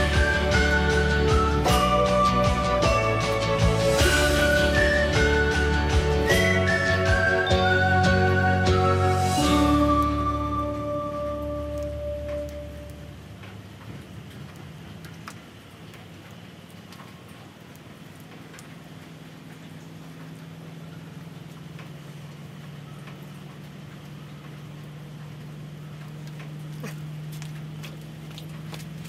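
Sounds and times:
music: 0.0 - 13.0
steady rain hiss: 0.0 - 29.0
water drip ticks: 11.3 - 29.0.

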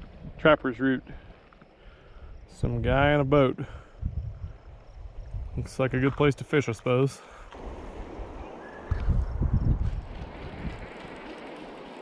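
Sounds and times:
wind buffeting microphone: 0.0 - 1.3, 2.1 - 6.3, 7.3 - 12.0.

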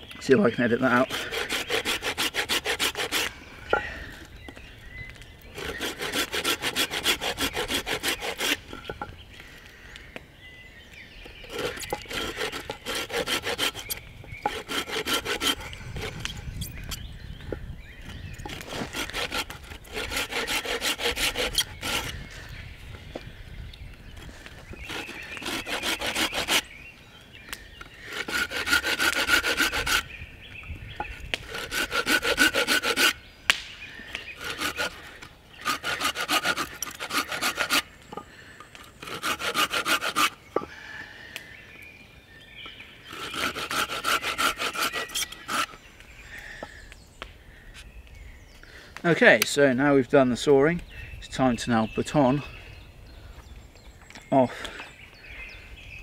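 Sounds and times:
hand saw cutting log: 0.4 - 3.8, 5.6 - 9.1, 11.2 - 17.0, 18.4 - 22.2, 24.7 - 26.7, 27.8 - 30.1, 31.0 - 33.6, 34.2 - 38.2, 38.8 - 40.7, 43.1 - 45.8.

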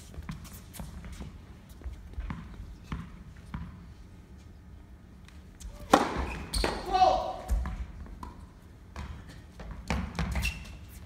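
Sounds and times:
tennis ball bouncing: 5.8 - 6.9
tennis racquet hitting ball: 5.8 - 8.4
person shouting: 6.8 - 7.5.

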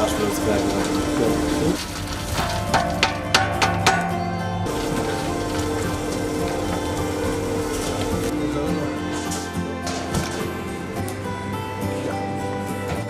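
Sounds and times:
dough mixer humming: 0.0 - 2.8, 4.7 - 9.2
dried fruit pattering into steel bowl: 0.0 - 8.3.

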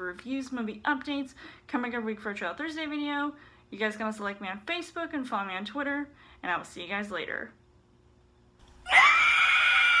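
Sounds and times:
woman screaming: 8.8 - 10.0.

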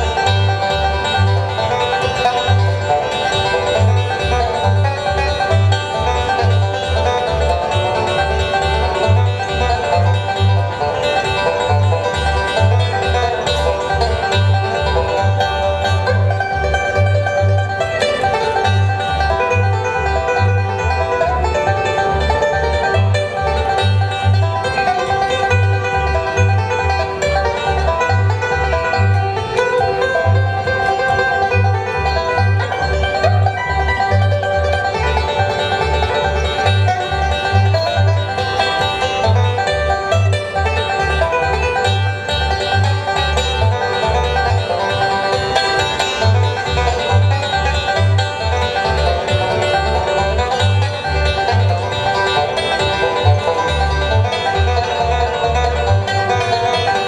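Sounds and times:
banjo picking: 0.0 - 57.0
low bass notes: 0.0 - 57.0.

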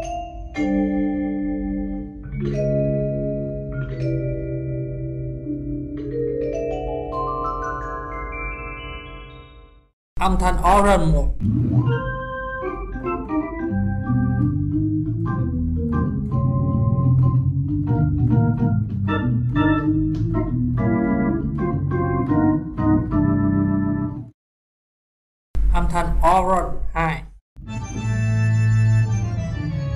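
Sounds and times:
organ chords with melody: 0.5 - 7.3, 11.6 - 24.3, 27.6 - 29.9.

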